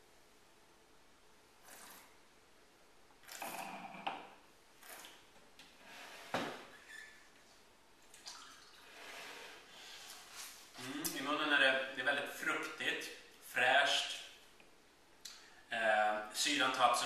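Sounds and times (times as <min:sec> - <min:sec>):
slurping and gurgling wine: 0:01.6 - 0:02.2, 0:03.2 - 0:04.2.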